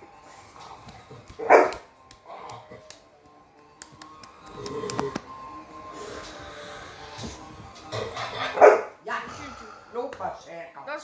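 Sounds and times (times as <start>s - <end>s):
music from a television: 0.0s - 11.0s
dog barking: 1.4s - 1.9s, 8.2s - 9.0s.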